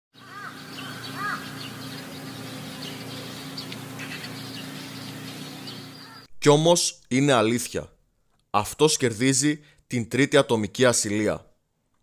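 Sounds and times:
birds calling and chirping: 0.1s - 6.3s
arching bird calls: 0.2s - 6.3s
low steady hum: 0.6s - 6.5s.

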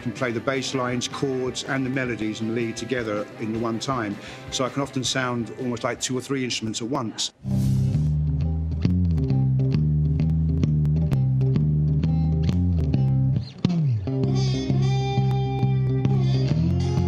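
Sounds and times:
slide guitar glide: 7.4s - 17.0s
fingerstyle electric guitar: 7.8s - 17.0s.

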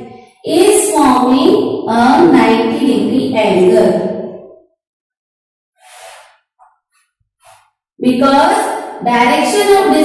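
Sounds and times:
chalk scratching on blackboard: 5.8s - 6.4s, 7.4s - 7.7s.

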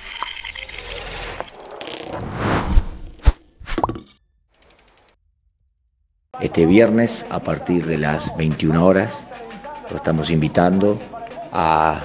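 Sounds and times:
ratchet-like clicks: 4.6s - 5.2s.

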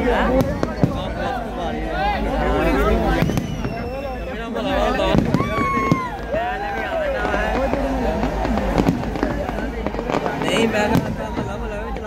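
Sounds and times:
crowd talking and shouting: 0.0s - 12.0s
fireworks bangs and cracks: 0.0s - 12.0s
firework whistle: 3.0s - 9.3s.

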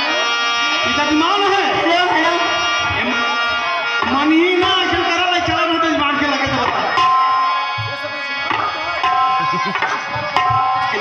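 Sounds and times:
harmonium chords: 0.0s - 11.0s
men speaking: 7.8s - 11.0s.

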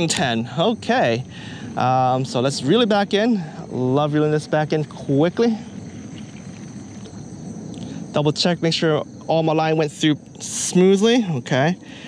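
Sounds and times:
crickets chirping: 0.0s - 12.0s.

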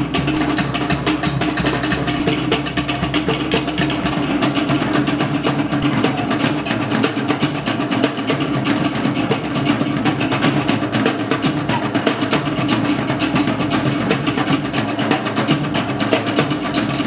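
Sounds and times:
large drum: 0.0s - 17.0s
wooden slit drums: 0.0s - 17.0s.

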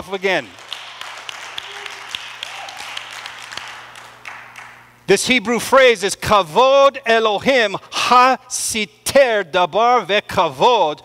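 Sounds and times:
audience applauding: 0.4s - 4.8s.

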